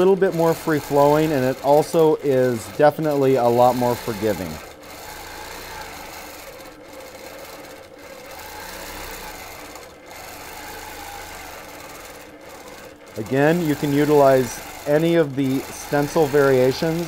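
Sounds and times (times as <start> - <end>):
quilting machine stitching: 0.0 - 17.0.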